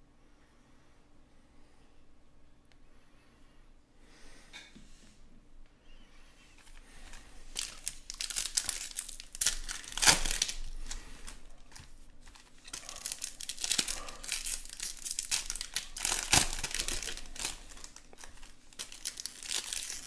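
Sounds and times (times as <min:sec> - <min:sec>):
plastic wrappers crinkling: 0:06.6 - 0:20.0.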